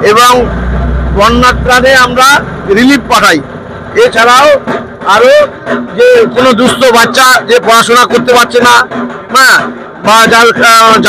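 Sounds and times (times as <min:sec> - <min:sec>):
man talking into microphone: 0:00.0 - 0:00.5, 0:01.1 - 0:11.0.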